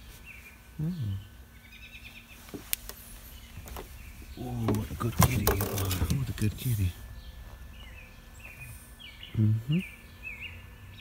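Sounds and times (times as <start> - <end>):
chirping: 0.0 - 11.0.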